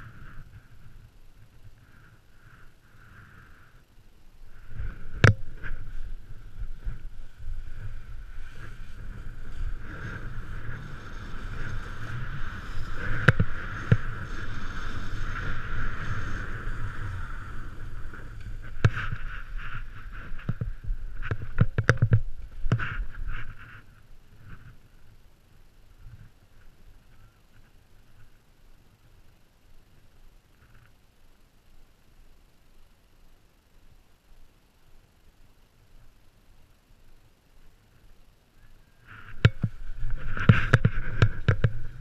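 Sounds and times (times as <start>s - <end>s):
snowboard sliding through snow: 4.4s - 21.6s, 22.3s - 25.0s, 38.9s - 42.0s.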